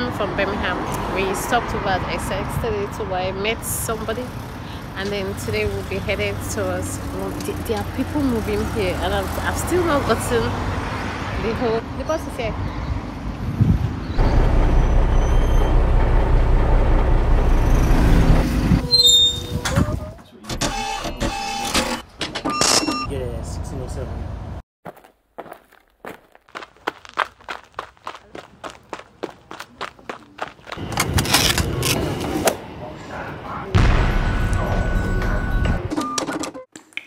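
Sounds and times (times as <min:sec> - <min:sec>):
bus engine rumbling: 0:00.0 - 0:10.8, 0:13.7 - 0:21.4
wind buffeting microphone: 0:12.8 - 0:14.2
footsteps on pavement: 0:24.8 - 0:32.4.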